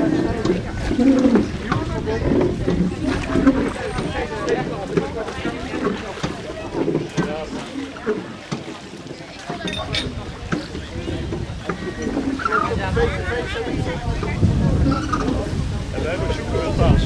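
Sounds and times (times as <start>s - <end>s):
people talking quietly: 0.0s - 17.0s
wind rumbling on microphone: 0.0s - 17.0s.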